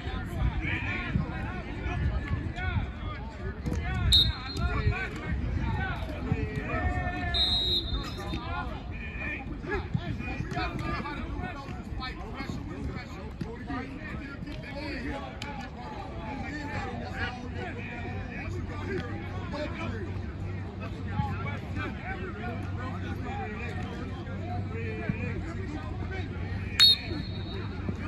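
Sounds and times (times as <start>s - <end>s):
chatter of voices outdoors: 0.0s - 28.0s.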